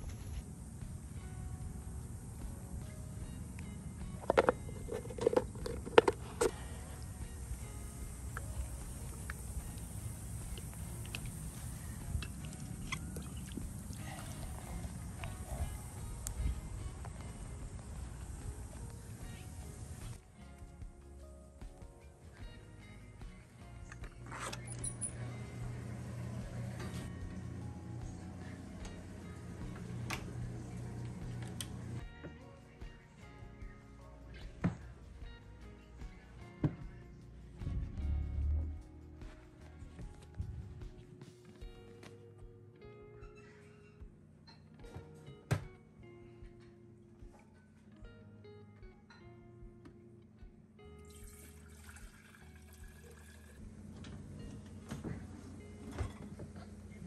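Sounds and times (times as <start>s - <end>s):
quiet background music: 0.0s - 57.0s
water pouring into metal jug: 51.0s - 53.6s.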